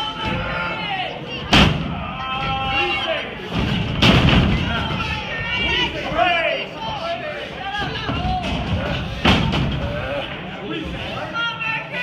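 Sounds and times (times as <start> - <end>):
crowd shouting: 0.0 - 12.0
wrestlers impacting in ring: 1.4 - 5.2, 7.7 - 10.2.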